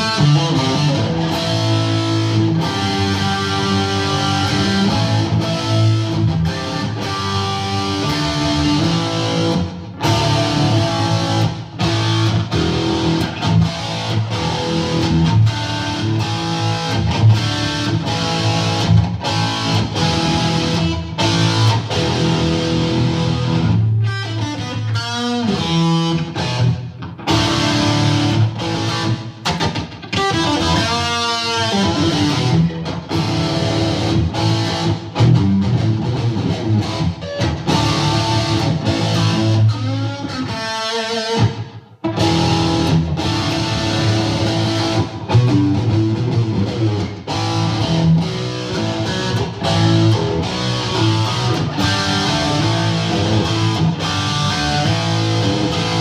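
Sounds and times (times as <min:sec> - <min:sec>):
amplified electric guitar strumming: 0:00.0 - 0:56.0.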